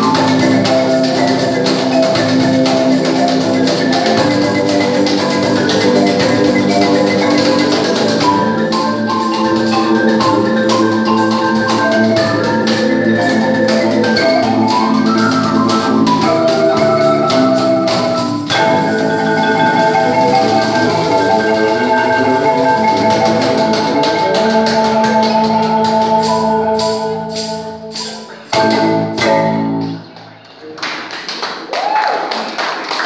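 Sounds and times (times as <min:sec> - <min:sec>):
marimba played with mallets: 0:00.0 - 0:30.2
cajon: 0:00.0 - 0:30.4.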